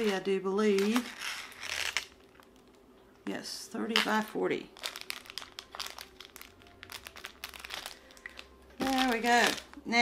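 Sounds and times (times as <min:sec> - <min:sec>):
canvas and plastic film crinkling: 0:00.0 - 0:02.7, 0:03.9 - 0:10.0.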